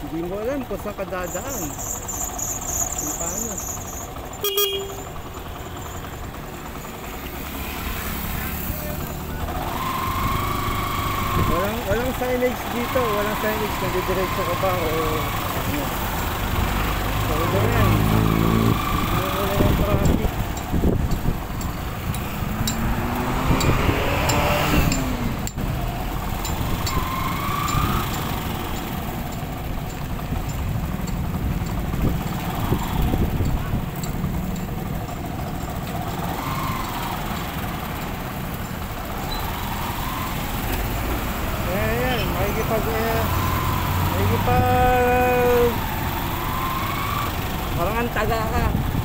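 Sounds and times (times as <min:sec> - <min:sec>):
motorcycle engine revving: 0:00.0 - 0:49.0
traffic engines: 0:00.0 - 0:49.0.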